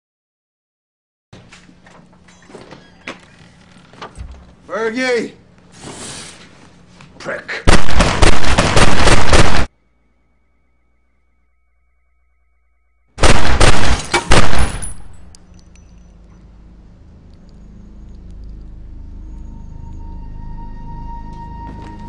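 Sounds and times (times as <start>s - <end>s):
pistol fire volleys: 7.7s - 9.7s, 13.2s - 15.3s.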